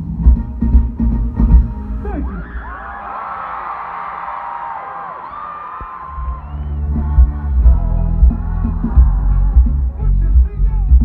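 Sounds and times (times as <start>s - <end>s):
loud bass-heavy live band music: 0.0s - 2.5s, 6.2s - 11.0s
crowd screaming and cheering: 2.0s - 10.1s.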